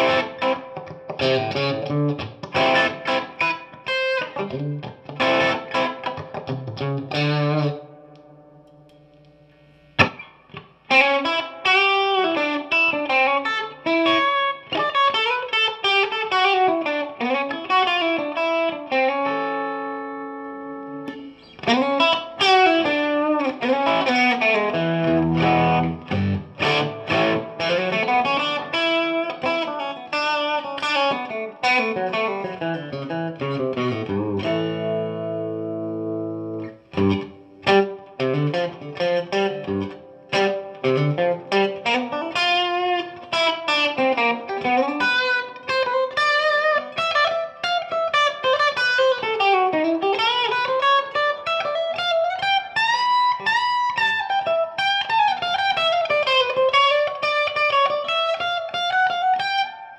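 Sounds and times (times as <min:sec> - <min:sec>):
electric guitar playing: 0:00.0 - 0:59.9.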